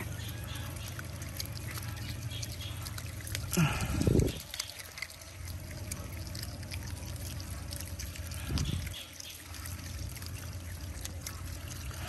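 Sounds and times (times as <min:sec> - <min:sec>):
hose water pouring into metal bowl: 0:00.0 - 0:12.0
otters feeding clicks and splashes: 0:00.0 - 0:12.0.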